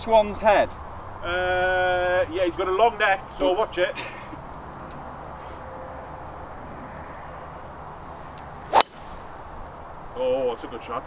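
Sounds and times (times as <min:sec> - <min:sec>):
faint outdoor background: 0:00.0 - 0:11.0
golf club striking ball: 0:08.3 - 0:09.5.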